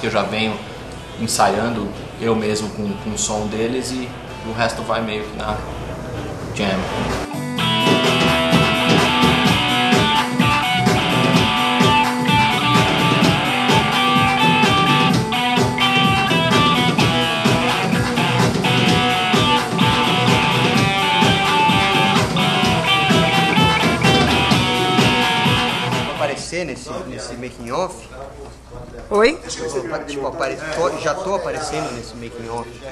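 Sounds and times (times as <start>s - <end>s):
rock music with electric guitar: 7.2s - 26.2s.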